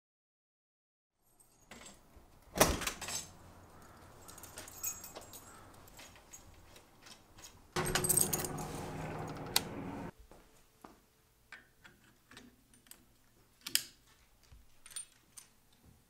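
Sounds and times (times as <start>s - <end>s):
window blinds rattling: 7.8s - 10.1s.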